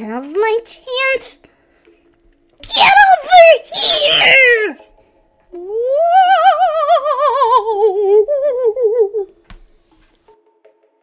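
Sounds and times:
person shouting: 0:02.6 - 0:04.8, 0:05.6 - 0:09.3
person wailing: 0:02.7 - 0:04.8, 0:05.6 - 0:09.3.

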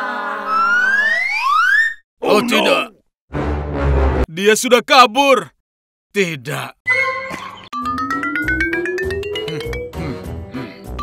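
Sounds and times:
whistle-like tone gliding upward: 0:00.4 - 0:02.0.

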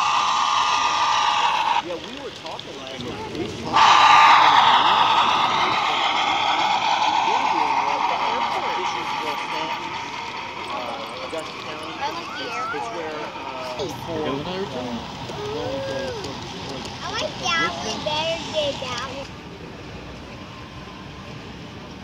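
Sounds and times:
crowd chatter: 0:00.0 - 0:22.0
model train whirring past: 0:00.0 - 0:22.0.

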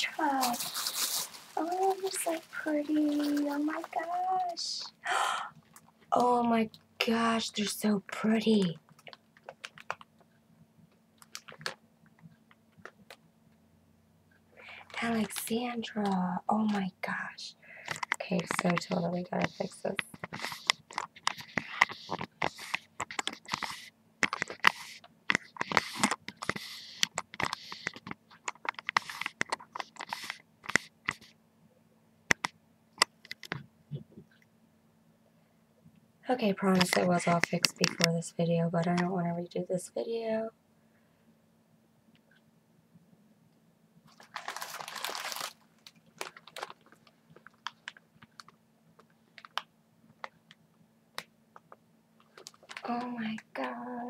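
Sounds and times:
wrapping paper crinkling: 0:00.0 - 0:04.9, 0:17.8 - 0:31.3, 0:44.1 - 0:49.7, 0:52.2 - 0:53.0.

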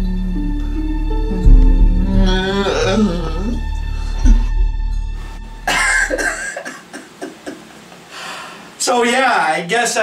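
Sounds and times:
low music drone: 0:00.0 - 0:06.3
person coughing harshly: 0:05.6 - 0:06.9
breathy bursts: 0:08.0 - 0:08.8.

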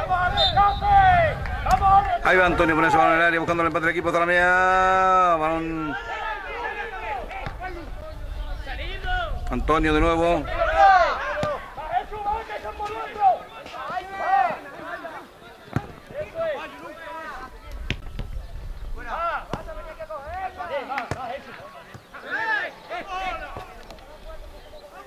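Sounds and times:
voices calling and shouting: 0:00.0 - 0:25.0
ball being kicked: 0:19.4 - 0:19.8.

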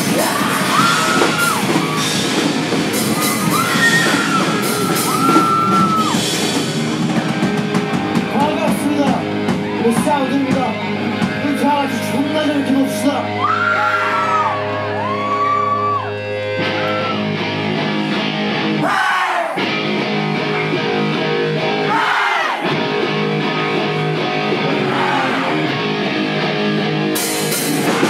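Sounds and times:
live rock band playing: 0:00.0 - 0:18.9, 0:19.6 - 0:22.0, 0:22.6 - 0:28.0.

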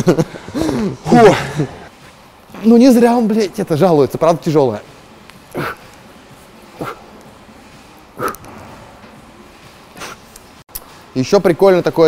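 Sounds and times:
man grunting with effort: 0:00.6 - 0:01.9.

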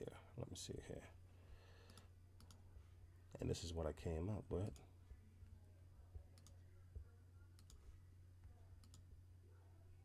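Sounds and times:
low steady hum: 0:00.0 - 0:10.0
computer mouse clicks: 0:01.9 - 0:02.6, 0:06.4 - 0:06.6, 0:07.6 - 0:07.8, 0:08.8 - 0:09.1.

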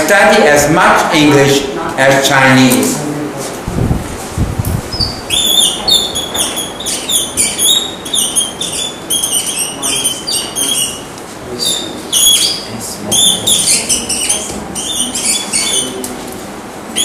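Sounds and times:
marker squeaking on whiteboard: 0:04.9 - 0:16.1.

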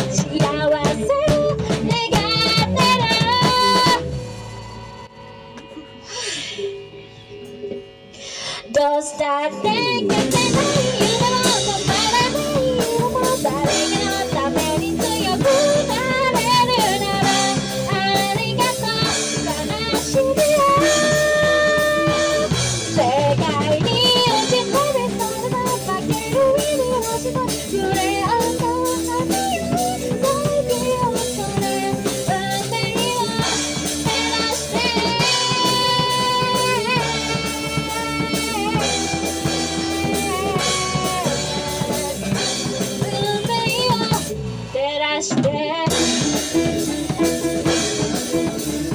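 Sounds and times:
woman singing: 0:00.0 - 0:04.0, 0:08.7 - 0:48.9
keyboard: 0:00.0 - 0:44.8, 0:45.9 - 0:48.9
bass guitar: 0:00.0 - 0:48.9
drum kit: 0:00.0 - 0:48.9
electric guitar: 0:00.0 - 0:48.9.

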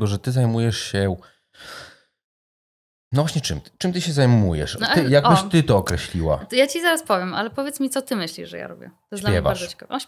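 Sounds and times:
man speaking: 0:00.0 - 0:01.8, 0:03.2 - 0:06.5, 0:09.2 - 0:09.7
man breathing in: 0:01.2 - 0:02.2.

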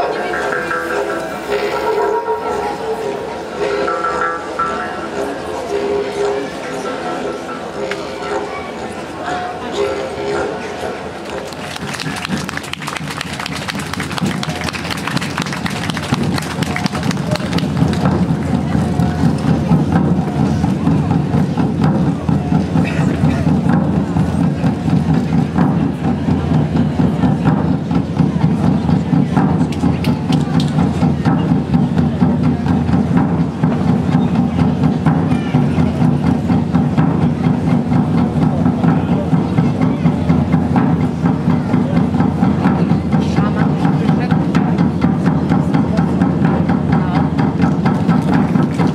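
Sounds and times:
hand drums playing fast rhythm: 0:00.0 - 0:05.2, 0:11.8 - 0:48.9.

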